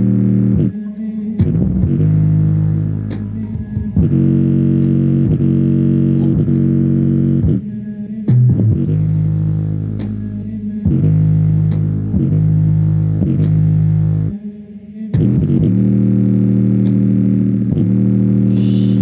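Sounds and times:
bass-heavy music through speaker: 0.0 - 19.0.

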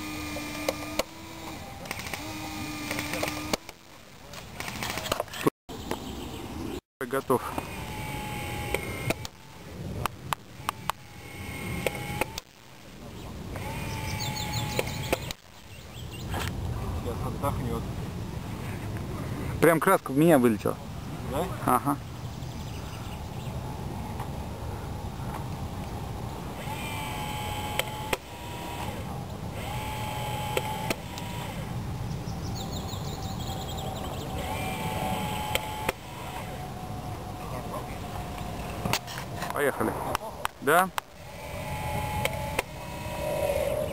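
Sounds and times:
small electric motor whining: 0.0 - 3.9, 7.4 - 12.9, 13.5 - 15.6, 26.5 - 31.8, 33.5 - 39.9, 41.0 - 43.9.

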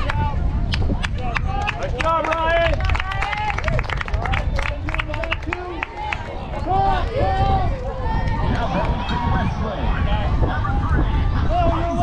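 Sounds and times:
players and spectators calling out: 5.5 - 12.0
steady low rumble: 6.3 - 12.0.

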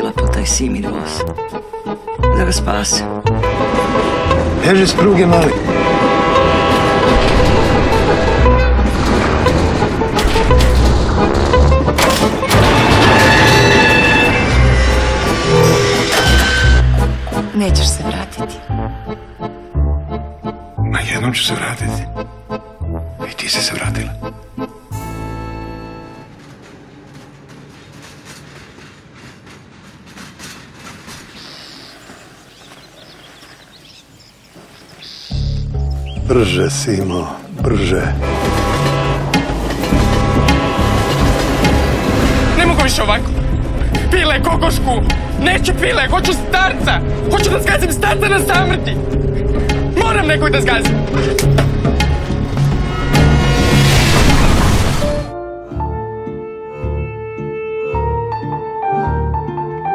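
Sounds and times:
dramatic film music: 0.0 - 27.7, 35.3 - 59.9
train locomotive rumbling: 0.0 - 56.1
train horn: 3.2 - 9.3, 11.2 - 17.3, 38.1 - 42.6
rail clicks: 3.4 - 18.4, 24.4 - 33.5, 36.7 - 53.4.

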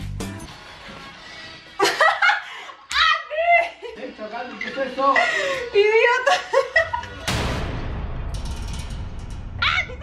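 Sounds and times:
people laughing: 1.8 - 7.3
high fine rattle: 7.3 - 10.0
low rumble: 7.3 - 10.0.

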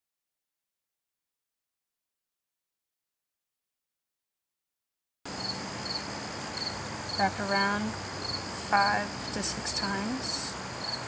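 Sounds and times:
faint steady hum: 5.3 - 11.0
high insect chirping: 5.3 - 11.0.

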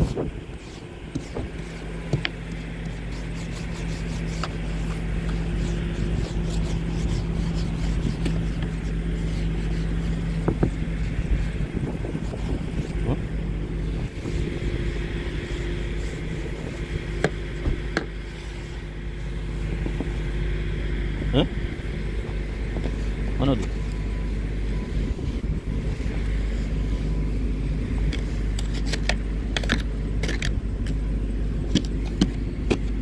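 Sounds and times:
snow brush sweeping glass: 0.0 - 20.1
brush ticking against car: 0.0 - 20.3, 21.3 - 33.0
car engine idling: 0.0 - 33.0.

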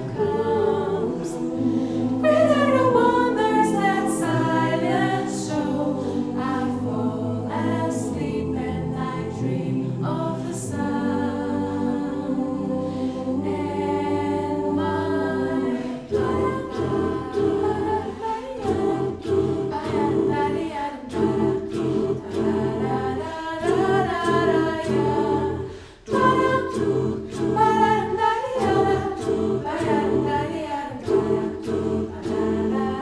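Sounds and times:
mixed choir singing a cappella: 0.0 - 33.0.

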